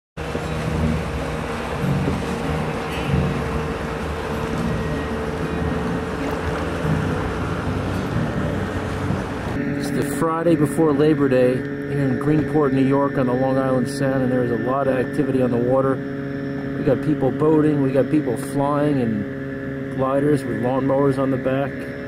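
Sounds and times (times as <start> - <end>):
steady motor drone: 0.2 - 22.0
water noise: 0.2 - 22.0
wind: 0.2 - 22.0.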